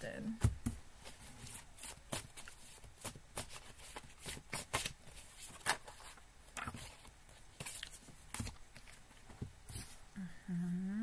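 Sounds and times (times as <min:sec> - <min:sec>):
cards being shuffled: 0:01.0 - 0:10.0.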